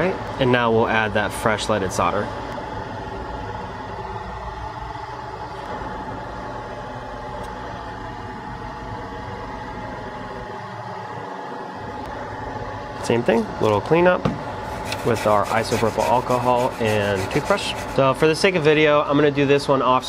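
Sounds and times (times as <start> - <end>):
mechanical fan hum: 0.0 - 20.0.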